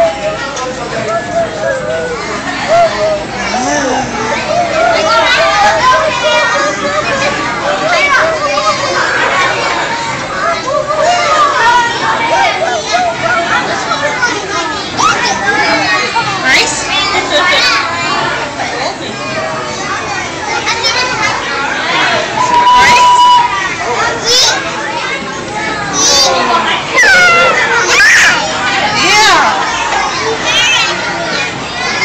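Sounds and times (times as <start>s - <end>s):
children's voices: 0.0s - 32.0s.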